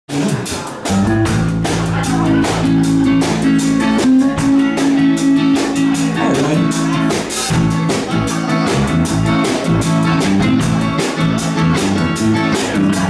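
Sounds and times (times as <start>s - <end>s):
drum kit beat: 0.1s - 13.0s
electric bass: 0.1s - 13.0s
electric guitar: 0.1s - 13.0s.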